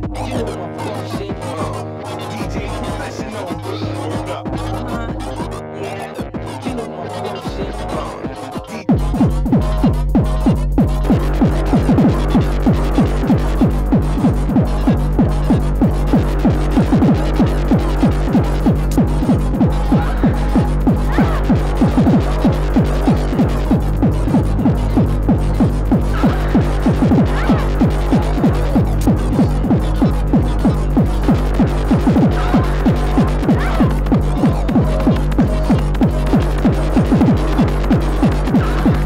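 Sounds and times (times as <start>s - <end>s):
fast electronic dance music: 0.0s - 39.0s
fast kick drum: 8.9s - 39.0s
low bass tone: 8.9s - 39.0s.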